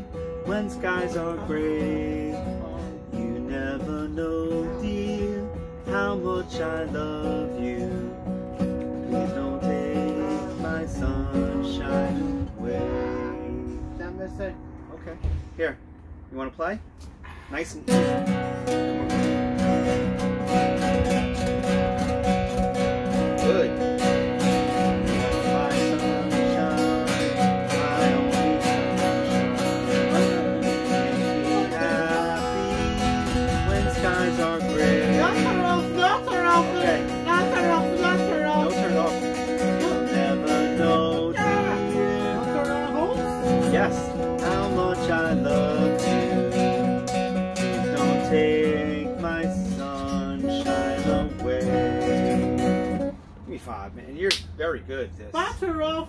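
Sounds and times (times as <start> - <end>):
acoustic guitar strumming: 0.0 - 53.7
person singing: 0.4 - 13.9, 24.8 - 53.0.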